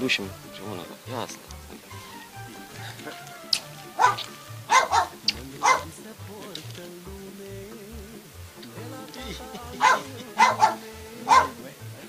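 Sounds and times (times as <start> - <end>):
dog barking: 3.9 - 5.9, 9.8 - 11.6.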